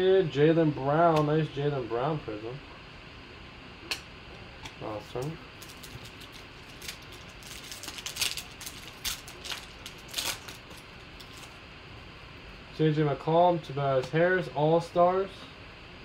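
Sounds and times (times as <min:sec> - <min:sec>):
foil wrapper crinkling and tearing: 0:05.0 - 0:11.6.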